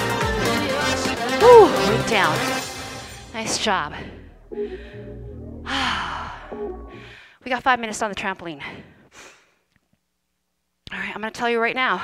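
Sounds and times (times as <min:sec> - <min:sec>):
workout music with bass line: 0:00.0 - 0:07.2.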